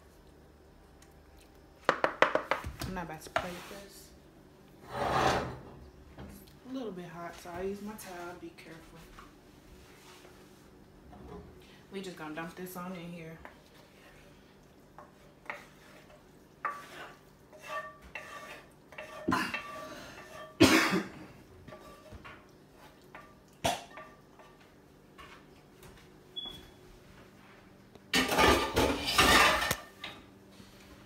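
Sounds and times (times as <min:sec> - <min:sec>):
wooden spatula scraping skillet: 0:03.2 - 0:04.0, 0:04.8 - 0:05.7, 0:13.4 - 0:20.6, 0:21.6 - 0:23.2
clatter of cookware: 0:28.1 - 0:30.2.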